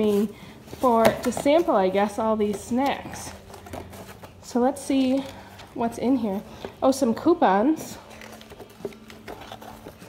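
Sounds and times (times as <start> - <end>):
paper booklet rustling: 8.0 - 10.0
page turning: 8.1 - 10.0.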